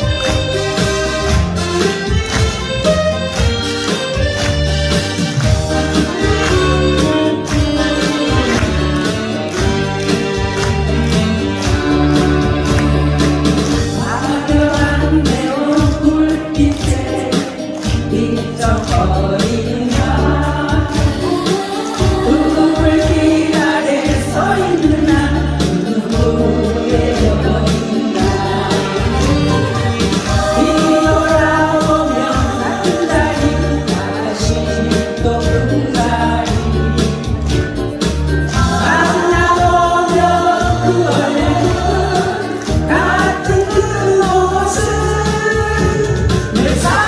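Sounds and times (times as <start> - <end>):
band with pulsing bass beat: 0.0 - 21.4, 22.0 - 47.0
woman singing into microphone: 13.9 - 37.3, 38.5 - 47.0.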